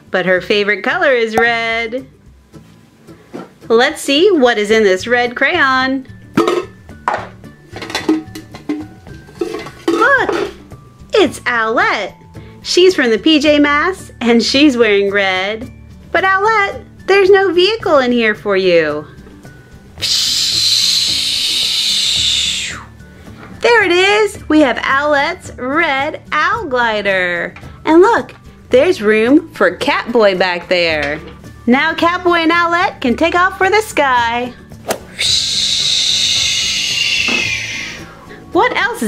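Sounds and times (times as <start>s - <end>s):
soft background music: 0.0s - 39.0s
high hissing whoosh effect: 34.8s - 38.2s.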